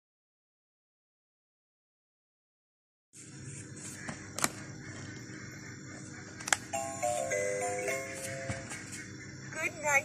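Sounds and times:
electronic toy melody beeping: 6.7 - 8.7.

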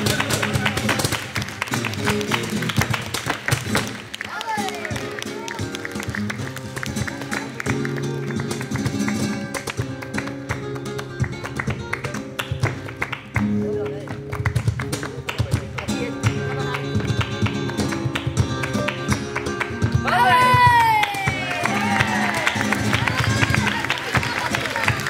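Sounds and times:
flamenco guitar chords: 0.0 - 25.0.

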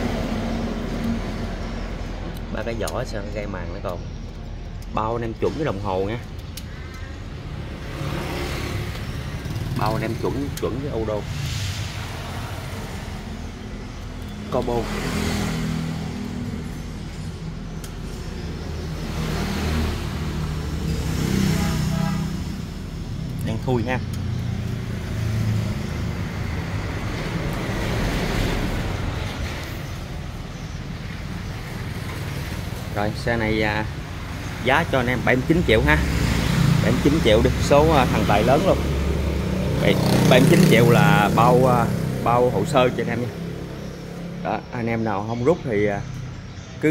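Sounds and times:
rushing noise: 11.0 - 13.9.

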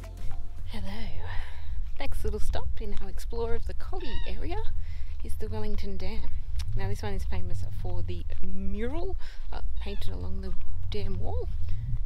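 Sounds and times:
steady low rumble: 0.2 - 12.0.

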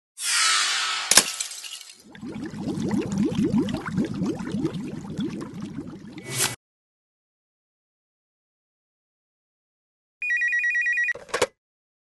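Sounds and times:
glass shattering crash: 1.1 - 2.1.

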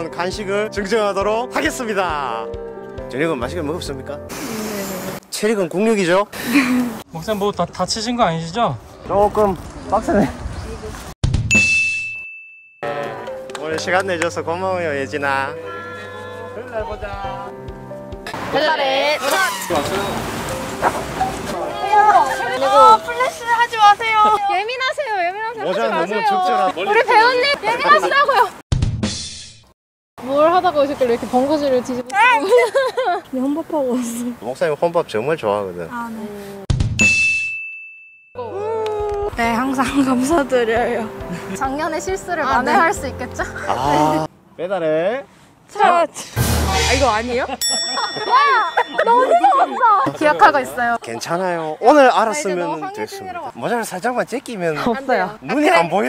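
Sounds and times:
bright high ding: 11.5 - 13.0, 37.0 - 38.4, 47.6 - 49.6.

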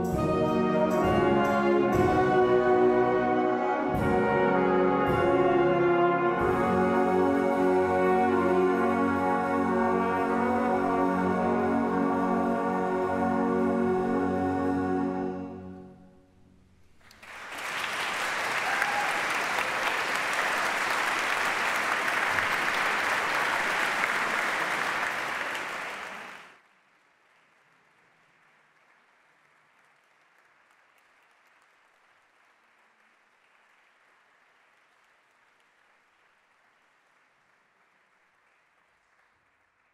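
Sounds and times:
music: 0.0 - 17.0
audience applauding: 17.0 - 39.9.

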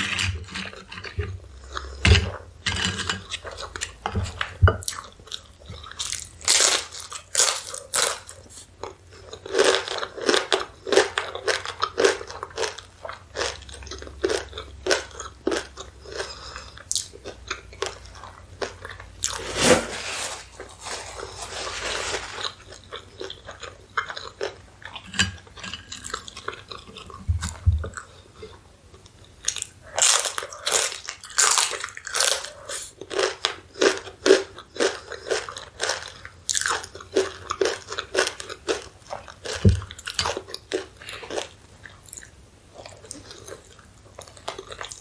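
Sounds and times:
corn chips crunching: 4.8 - 24.6, 29.4 - 42.3
chewing: 22.2 - 45.0.

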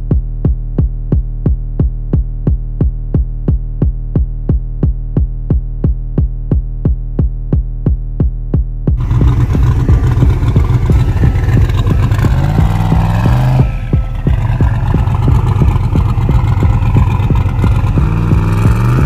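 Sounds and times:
car engine idling and revving: 9.0 - 19.0
tyres spinning: 9.0 - 19.0.

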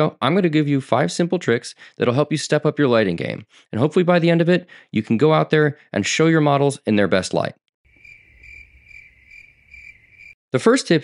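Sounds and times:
cricket chirping: 7.9 - 10.4.

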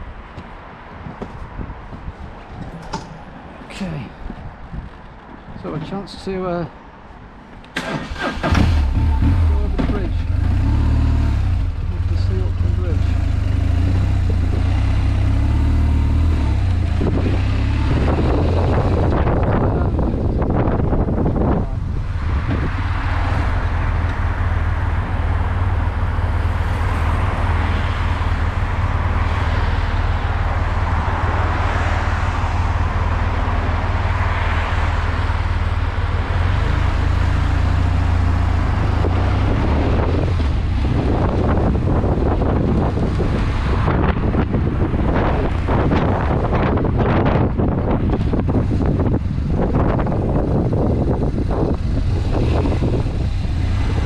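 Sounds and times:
wind noise on microphone: 0.0 - 6.0, 7.8 - 54.0.

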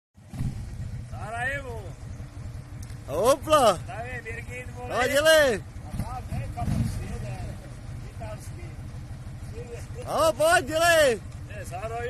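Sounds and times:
engine idling: 0.2 - 12.0.

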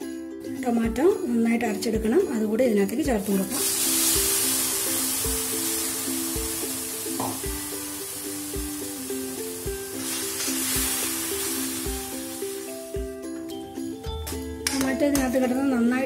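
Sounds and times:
background music with steady beat: 0.0 - 16.0
sauce sizzling in hot oil: 3.1 - 14.0.

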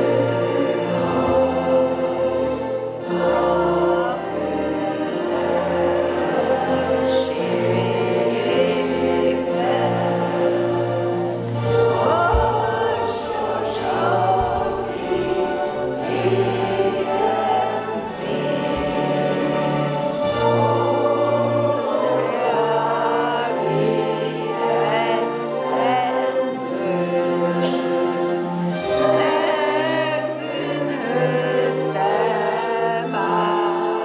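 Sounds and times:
choir singing: 0.0 - 34.0
instrumental accompaniment: 0.0 - 34.0.

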